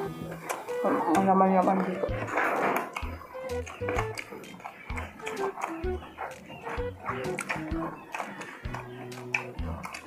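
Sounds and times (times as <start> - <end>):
plucked background music: 0.0 - 10.0
crisp food tearing and chewing: 7.2 - 10.0.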